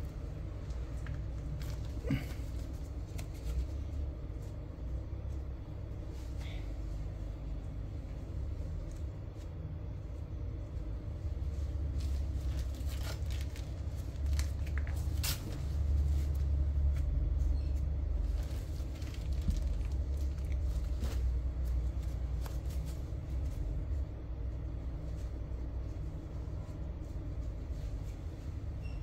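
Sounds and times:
low background rumble: 0.0 - 29.0.

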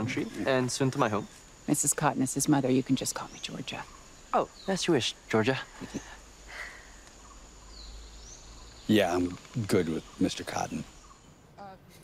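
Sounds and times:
rainforest ambience: 0.0 - 12.0.

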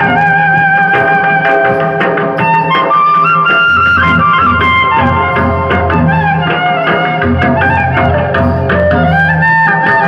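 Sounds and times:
drum strokes: 0.0 - 10.0
wind instrument melody: 0.0 - 10.0.

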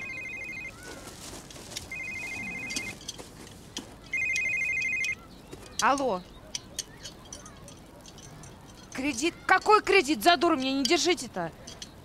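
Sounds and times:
mobile phone ringing: 0.0 - 0.9, 1.9 - 3.0, 4.1 - 5.3.

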